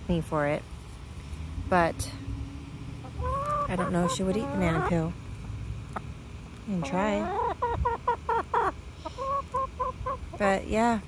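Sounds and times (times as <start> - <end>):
hens clucking: 3.0 - 5.2, 5.8 - 10.9.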